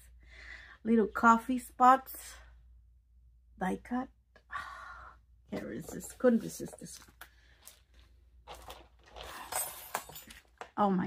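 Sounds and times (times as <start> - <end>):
low steady hum: 0.0 - 11.0
soft rustle of packaging: 5.5 - 9.5.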